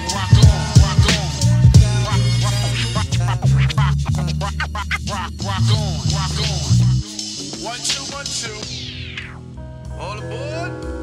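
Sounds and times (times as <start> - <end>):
heavy bass line: 0.0 - 11.0
rapped vocals: 0.0 - 11.0.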